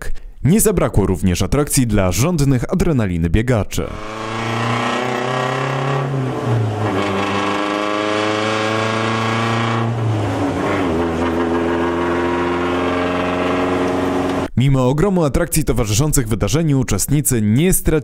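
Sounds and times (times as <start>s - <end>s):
rally car engine revving: 3.9s - 14.5s.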